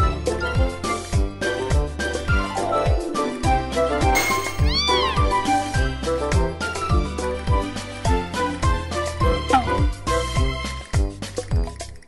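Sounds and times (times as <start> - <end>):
cat meow: 4.4 - 5.4.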